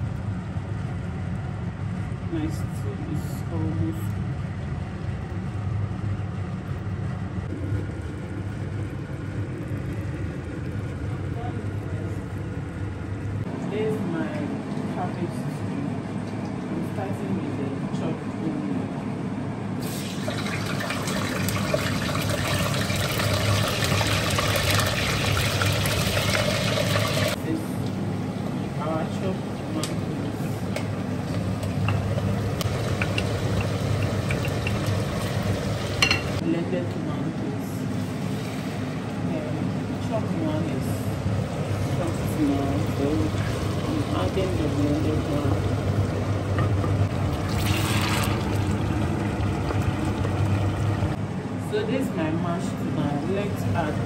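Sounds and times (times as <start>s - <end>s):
steady low hum: 0.0s - 54.0s
tomatoes sizzling in hot oil: 19.8s - 27.4s, 31.7s - 36.4s.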